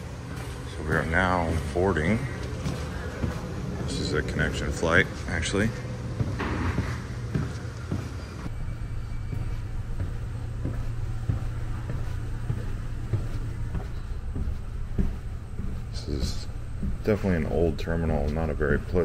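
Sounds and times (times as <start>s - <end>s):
footsteps walking: 0.0s - 19.0s
steady low rumble: 0.0s - 19.0s.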